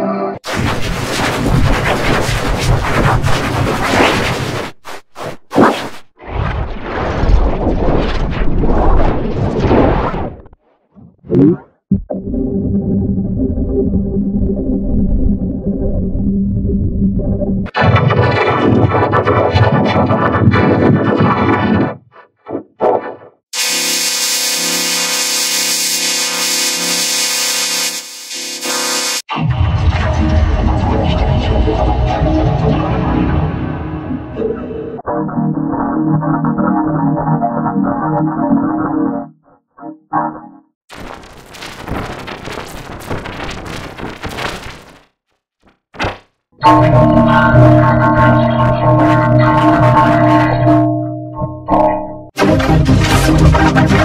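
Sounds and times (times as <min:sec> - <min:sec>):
harsh crackling distortion noise: 0:00.4 - 0:10.6, 0:23.6 - 0:31.2, 0:40.9 - 0:50.7
droning chord: 0:46.6 - 0:54.0.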